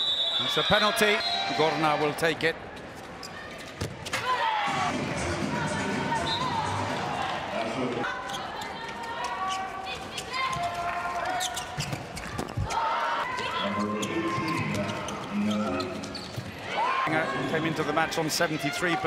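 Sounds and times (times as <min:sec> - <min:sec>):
players and crowd shouting: 0:00.4 - 0:02.4, 0:04.2 - 0:11.6, 0:12.6 - 0:19.0.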